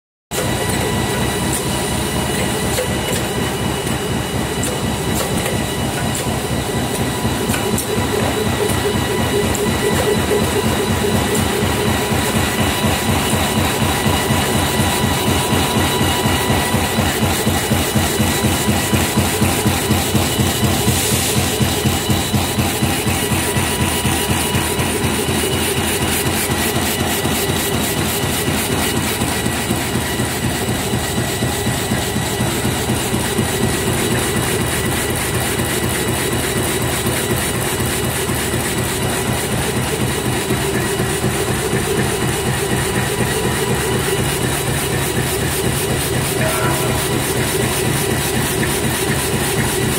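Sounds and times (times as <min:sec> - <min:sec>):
high machine whine: 0:00.4 - 0:49.9.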